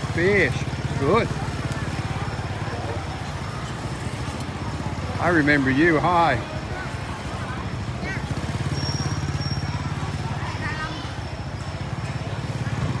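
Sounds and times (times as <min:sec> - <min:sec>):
faint voices: 0:00.0 - 0:13.0
small motorbike engine idling: 0:00.0 - 0:13.0.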